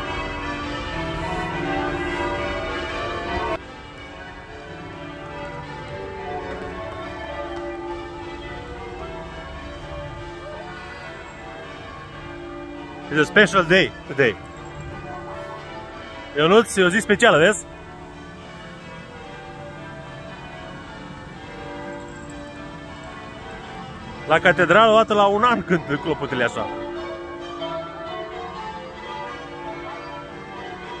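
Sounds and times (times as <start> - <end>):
church bells ringing: 0.0 - 31.0.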